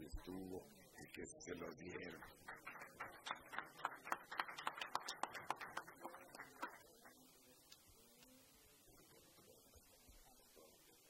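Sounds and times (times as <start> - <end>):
small audience applauding: 2.0 - 7.2.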